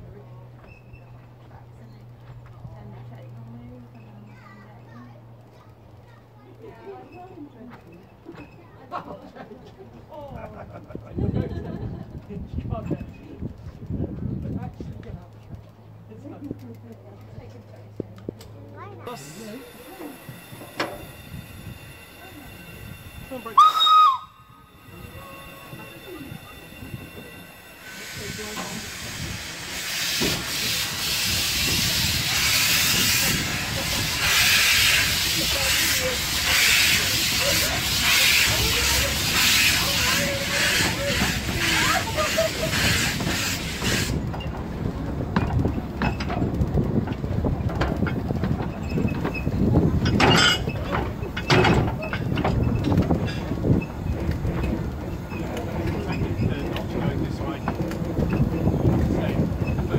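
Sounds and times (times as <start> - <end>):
steam locomotive rumbling and rattling: 0.0 - 59.9
loud steam hiss: 19.1 - 44.3.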